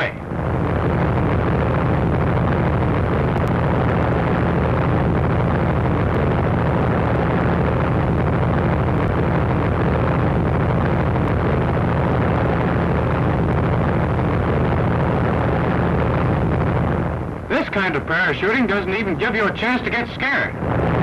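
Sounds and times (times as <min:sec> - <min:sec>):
propeller airplane engine droning: 0:00.0 - 0:21.0.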